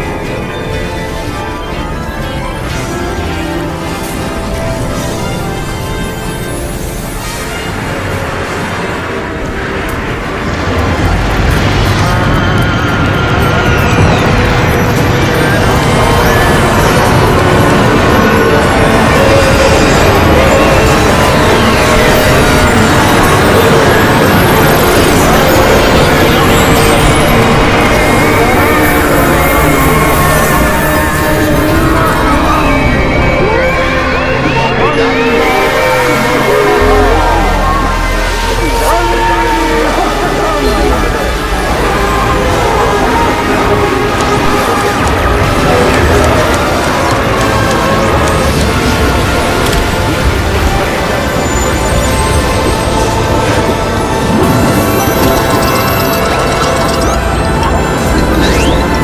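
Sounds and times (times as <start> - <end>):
overlapping fanfares and theme music: 0.0 - 59.0.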